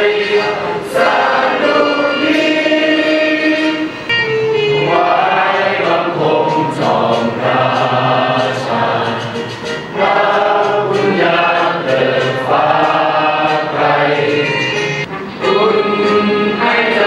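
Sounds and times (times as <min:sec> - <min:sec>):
choir singing slowly: 0:00.0 - 0:17.0.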